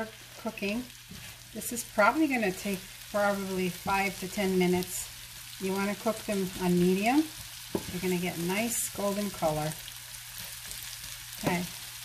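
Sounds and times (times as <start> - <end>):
onions sizzling in a skillet: 0.0 - 12.0.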